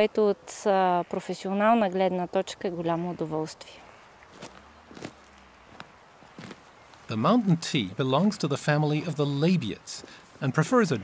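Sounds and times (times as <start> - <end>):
footsteps on stony ground: 4.3 - 7.7.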